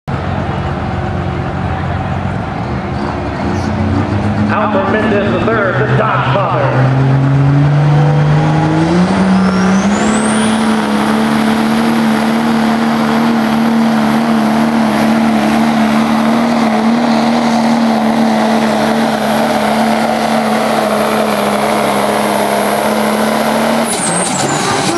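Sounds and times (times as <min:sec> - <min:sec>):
diesel engine at full throttle: 0:00.1 - 0:24.9
high turbo whistle: 0:08.9 - 0:12.1.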